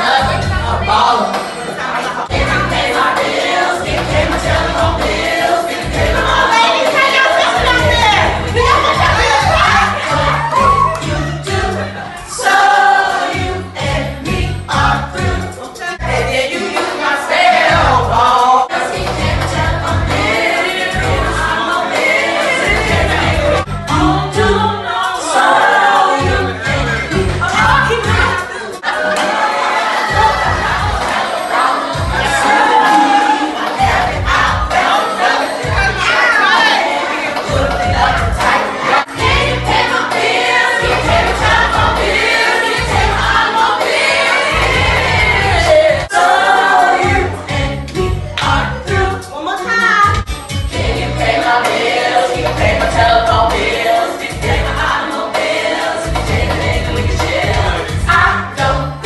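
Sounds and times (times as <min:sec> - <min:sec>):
group singing into microphone: 0:00.0 - 0:49.4, 0:50.2 - 0:59.0
amplified backing music: 0:00.0 - 0:59.0.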